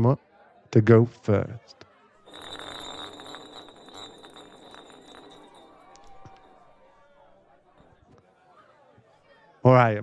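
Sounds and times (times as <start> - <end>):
bottle spinning on hard surface: 2.3 - 8.0.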